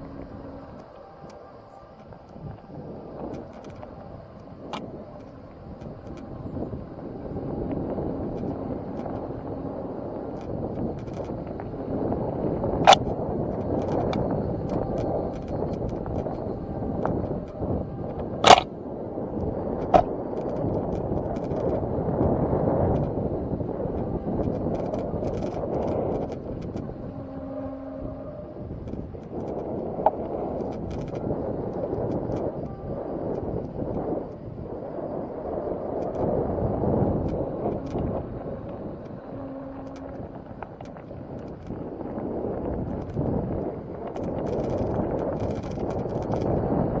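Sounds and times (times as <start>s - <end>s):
wind buffeting microphone: 0.0s - 47.0s
light clicks and rattles: 3.2s - 6.3s, 10.3s - 11.7s, 12.8s - 18.7s, 19.4s - 21.8s, 23.9s - 27.0s, 28.8s - 32.7s, 44.0s - 46.6s.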